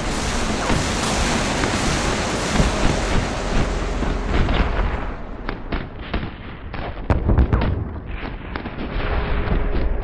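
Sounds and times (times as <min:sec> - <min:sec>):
sharp bangs: 0:00.0 - 0:09.5
low rumble: 0:00.0 - 0:10.0.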